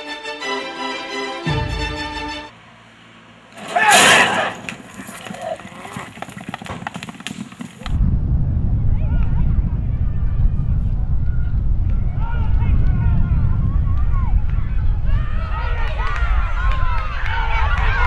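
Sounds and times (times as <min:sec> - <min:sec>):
spectators shouting: 0:03.6 - 0:04.7, 0:12.1 - 0:18.0
starting gates banging open: 0:03.6 - 0:04.9
clattering hooves: 0:03.6 - 0:08.0
galloping hooves rumble: 0:04.6 - 0:18.0.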